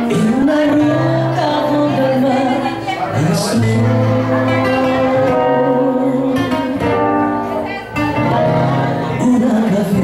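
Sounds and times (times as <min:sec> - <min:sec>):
live band with guitar chords: 0:00.0 - 0:10.0.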